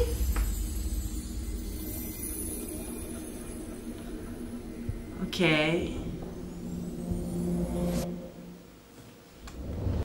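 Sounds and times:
low rumble: 0:00.0 - 0:08.2
low hum: 0:00.0 - 0:08.8.

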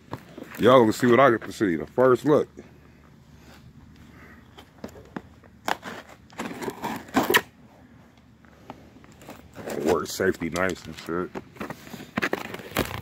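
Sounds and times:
cardboard box scraping: 0:05.7 - 0:07.5.

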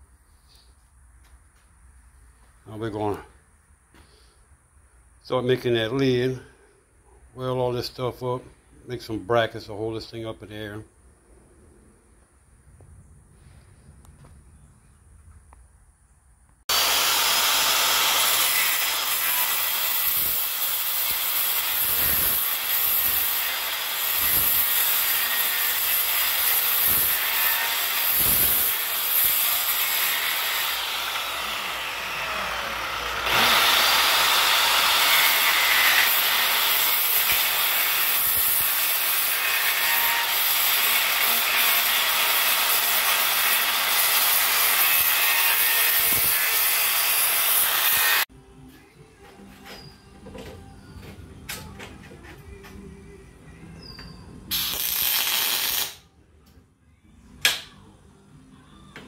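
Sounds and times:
circular saw cutting sheet metal: 0:16.7 - 0:48.3.

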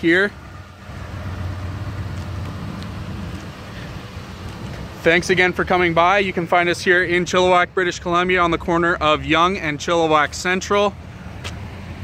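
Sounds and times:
vehicle engine rumble: 0:00.0 - 0:12.0.

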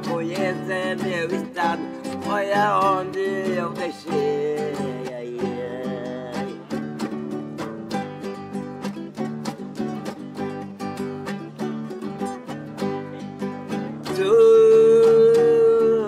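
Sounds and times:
acoustic guitar strumming chords: 0:00.0 - 0:16.0.

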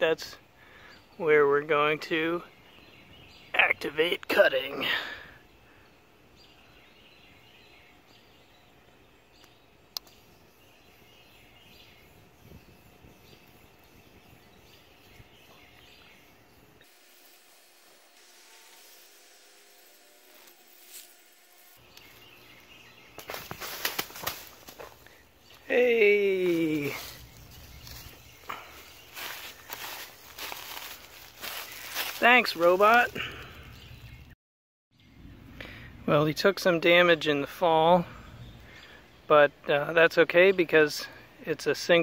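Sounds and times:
distant bird calls: 0:00.0 - 0:34.4, 0:35.0 - 0:41.4.

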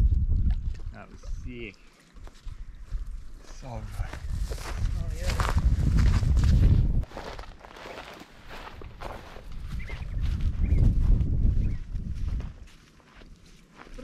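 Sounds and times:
wind buffeting microphone: 0:00.0 - 0:01.7, 0:02.3 - 0:07.4, 0:08.5 - 0:12.7
footsteps on sandy track: 0:01.9 - 0:14.0.

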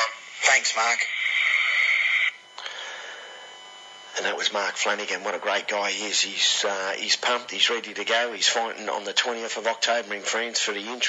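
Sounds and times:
telephone line hiss: 0:00.0 - 0:11.0.

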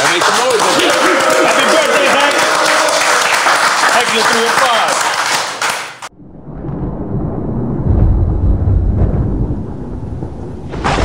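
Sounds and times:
group clapping and cheering: 0:00.0 - 0:06.1
deep rumbling sound effect: 0:06.1 - 0:11.0.

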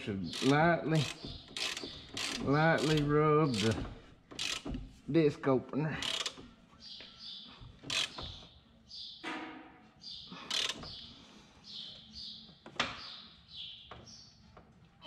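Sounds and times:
small birds chirping: 0:00.0 - 0:03.8, 0:06.8 - 0:09.2, 0:10.0 - 0:14.7.

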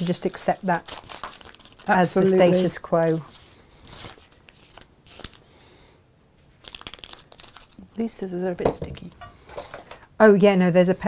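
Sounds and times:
adhesive sheet crinkling: 0:00.0 - 0:05.4, 0:06.5 - 0:08.3.

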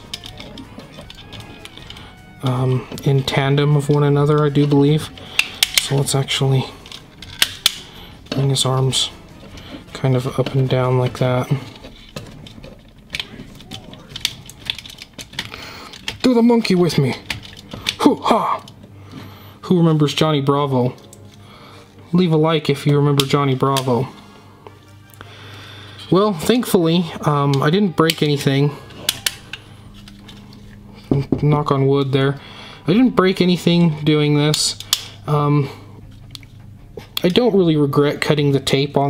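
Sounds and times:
hands handling plastic figure: 0:00.0 - 0:03.2, 0:03.8 - 0:08.5, 0:09.2 - 0:18.8, 0:27.5 - 0:31.2
faint steady hum: 0:00.0 - 0:39.0.

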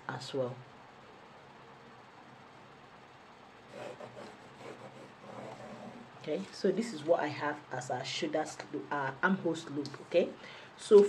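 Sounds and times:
low room hiss: 0:00.0 - 0:11.0
pencil scratching on paper: 0:03.7 - 0:06.1.

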